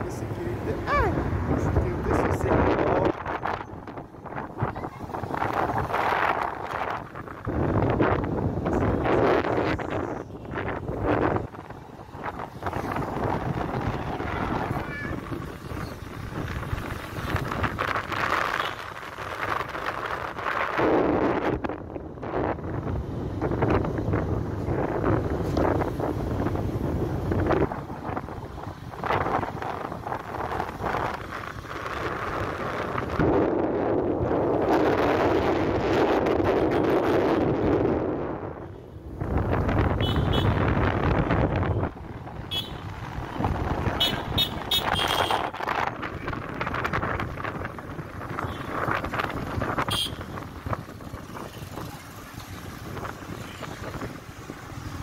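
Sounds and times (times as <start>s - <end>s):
motorcycle engine and road noise: 0.0s - 55.0s
wind rushing over microphone: 0.0s - 55.0s
vehicle horn toots: 40.0s - 40.6s, 44.0s - 45.4s, 49.8s - 50.4s.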